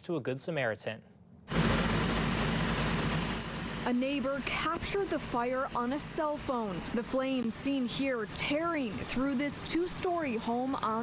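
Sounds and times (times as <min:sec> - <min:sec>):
fire engine running: 0:01.5 - 0:11.0.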